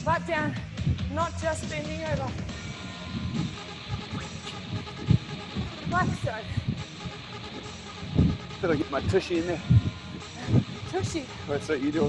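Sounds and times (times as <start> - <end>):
workout music: 0.0 - 12.0.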